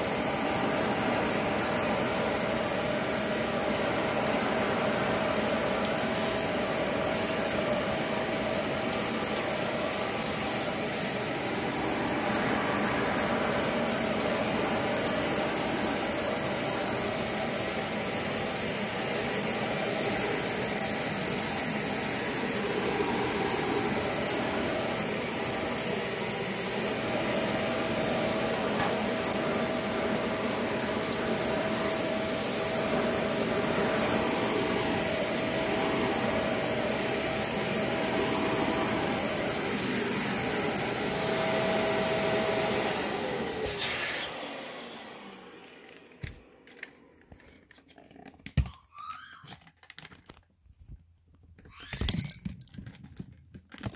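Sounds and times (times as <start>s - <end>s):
vacuum cleaner running: 0.0s - 49.5s.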